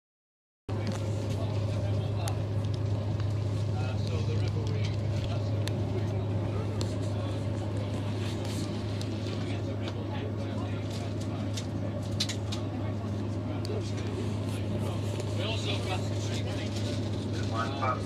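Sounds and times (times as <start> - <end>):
train rumbling: 0.7 - 18.0.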